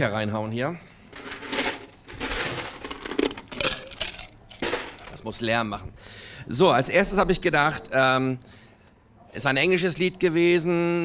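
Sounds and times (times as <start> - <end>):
ice cubes clinking in metal cup: 1.2 - 5.2.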